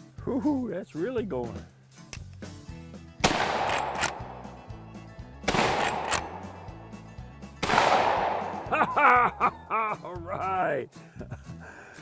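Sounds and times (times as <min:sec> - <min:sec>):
rifle shots echoing: 0:03.2 - 0:04.5, 0:05.4 - 0:06.8, 0:07.6 - 0:08.7
rifle lever click: 0:05.8 - 0:06.3.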